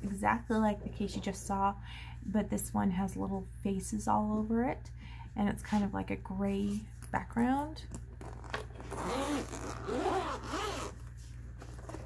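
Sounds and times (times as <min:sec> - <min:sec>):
zipper unzipping: 0:08.2 - 0:11.1.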